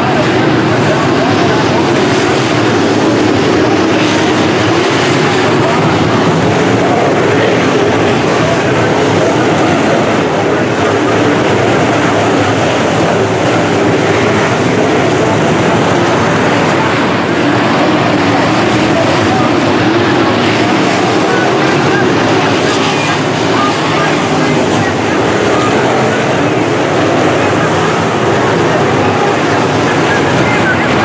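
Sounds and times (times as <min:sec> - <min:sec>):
race car engines droning: 0:00.0 - 0:31.0.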